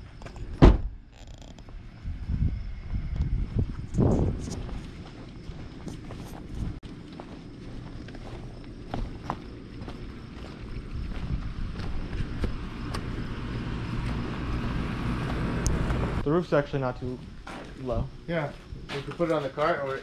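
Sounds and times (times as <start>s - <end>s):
wind rumbling on microphone: 1.6s - 6.8s, 9.6s - 16.2s
footsteps: 2.9s - 13.3s, 13.9s - 14.4s, 17.1s - 20.0s.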